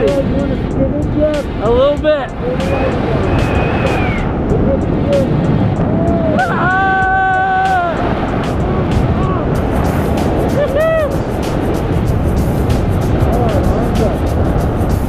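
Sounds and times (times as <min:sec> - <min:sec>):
background music: 0:00.0 - 0:15.0
wind roaring over microphone: 0:00.0 - 0:15.0.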